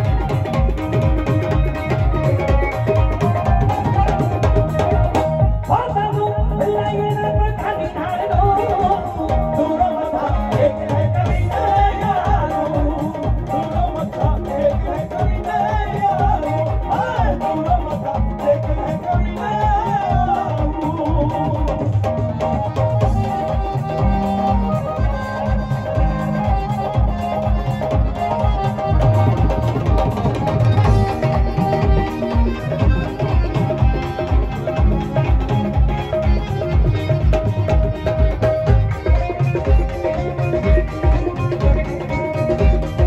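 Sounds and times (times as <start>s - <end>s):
keyboard melody: 0.0s - 43.0s
low drum beat: 0.0s - 43.0s
tabla: 0.0s - 43.0s.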